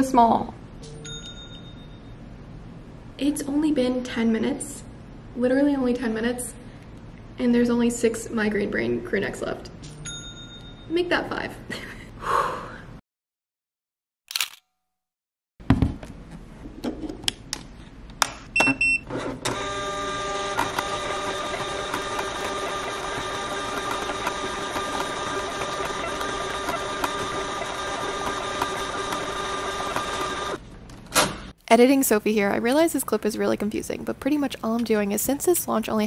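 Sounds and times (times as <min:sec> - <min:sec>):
label printer motor whine: 0:19.5 - 0:30.6.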